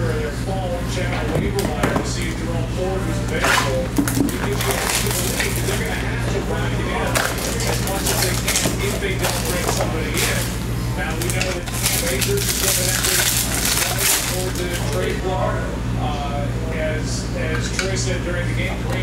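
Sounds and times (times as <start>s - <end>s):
wrappers crinkling: 3.3s - 6.1s, 7.1s - 15.2s
cards rustling and clicking: 3.4s - 6.0s, 7.1s - 15.0s.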